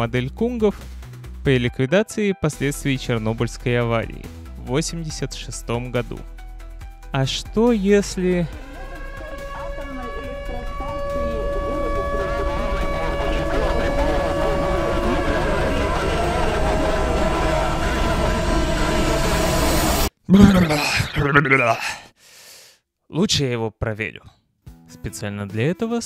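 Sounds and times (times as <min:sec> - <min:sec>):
dense drone with high tones: 0:07.8 - 0:20.1
jumble of indistinct voices: 0:08.7 - 0:17.7
brief vocal sound: 0:20.3 - 0:22.1.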